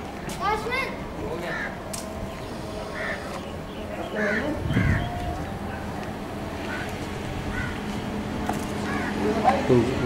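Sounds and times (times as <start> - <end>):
children calling and shouting: 0.2 - 7.9.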